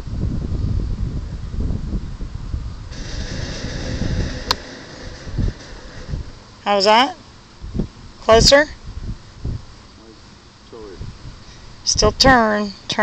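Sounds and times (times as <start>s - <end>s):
wind buffeting microphone: 0.0s - 7.0s, 7.6s - 9.8s, 10.8s - 12.4s
golf club striking ball: 4.2s - 6.3s.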